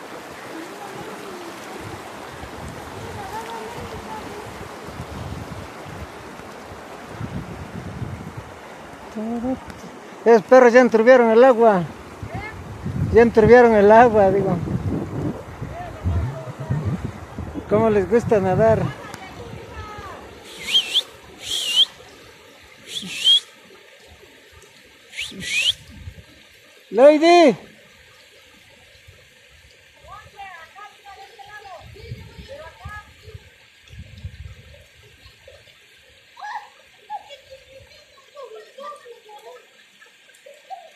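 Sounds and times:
river running over stones: 0.0 - 40.9
stream rushing over rocks: 0.0 - 40.9
wind buffeting microphone: 1.7 - 9.8, 11.9 - 20.4, 25.8 - 26.4, 31.7 - 35.1
bird raspy whistling call: 20.4 - 22.0, 22.8 - 23.5, 25.1 - 25.8.

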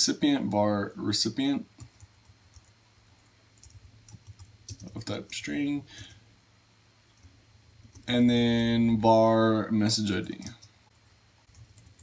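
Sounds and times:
computer keyboard typing: 1.8 - 2.8, 3.6 - 5.4, 11.5 - 12.0.

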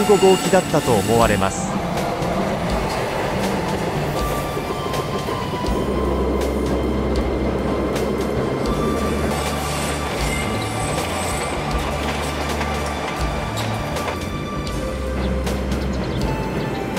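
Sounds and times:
freight train rumbling past: 0.0 - 16.9.

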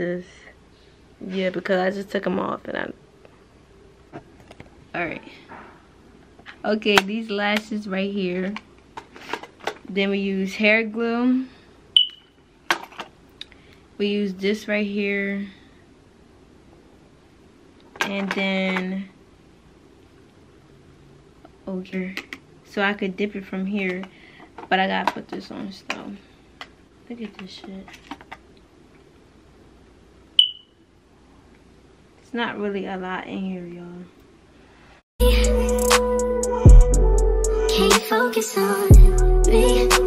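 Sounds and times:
short high-pitched beep: 12.0 - 12.3, 30.4 - 30.7.

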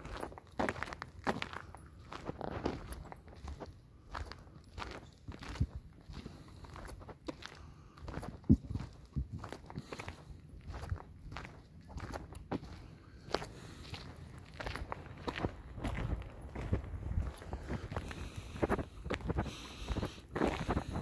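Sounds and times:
footsteps on a forest trail: 0.0 - 21.0.

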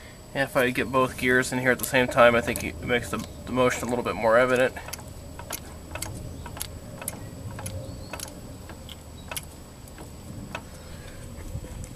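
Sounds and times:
differential gears clicking: 1.8 - 10.8.

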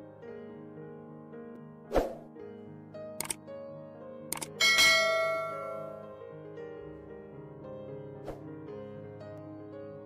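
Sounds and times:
soft piano music: 0.0 - 10.0
mouse-like clicks: 3.2 - 3.4, 4.3 - 4.6
bright bell chime: 4.6 - 6.2.

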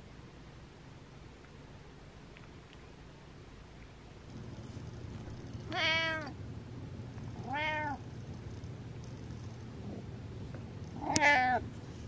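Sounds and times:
cat meowing: 5.7 - 6.4, 7.4 - 8.0, 11.0 - 11.6.

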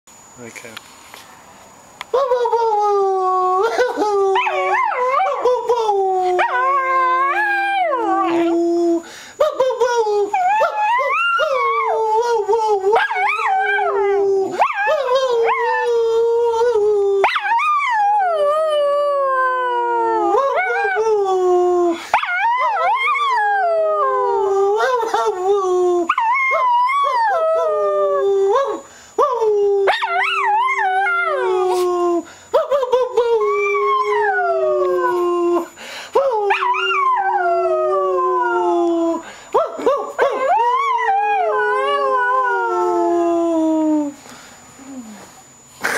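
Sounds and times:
small dog howling: 3.0 - 9.0, 10.2 - 44.2.

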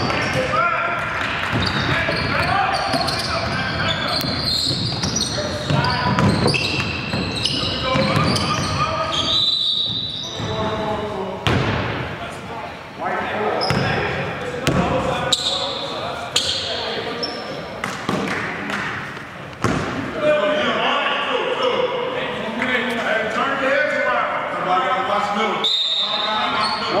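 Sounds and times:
basketball bouncing on court: 1.2 - 8.8, 13.6 - 14.0.

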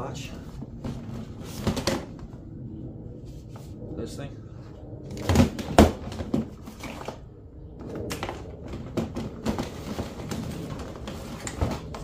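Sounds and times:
plastic cases clattering: 8.1 - 12.0.

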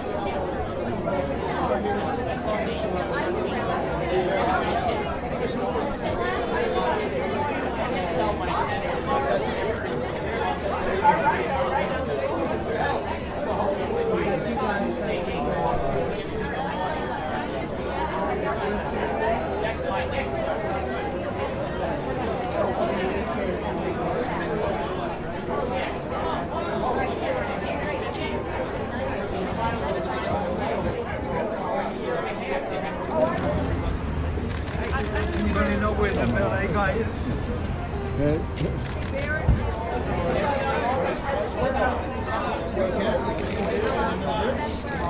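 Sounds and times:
people chattering: 0.0 - 45.0.

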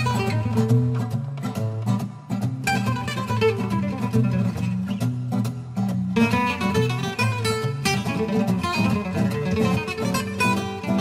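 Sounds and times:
acoustic guitar played with pick: 0.0 - 11.0.

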